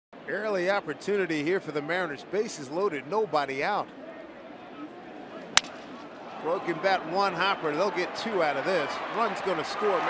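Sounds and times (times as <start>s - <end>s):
wooden bat cracking: 5.5s - 6.1s.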